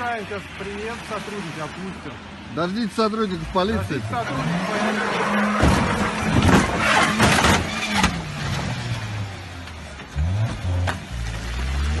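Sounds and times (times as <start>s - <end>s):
car engine revving: 3.4s - 12.0s
wheels knocking and banging: 5.4s - 9.0s.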